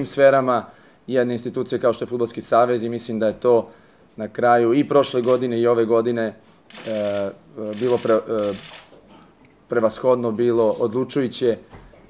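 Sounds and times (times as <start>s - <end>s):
man speaking: 0.0s - 8.7s, 9.7s - 11.6s.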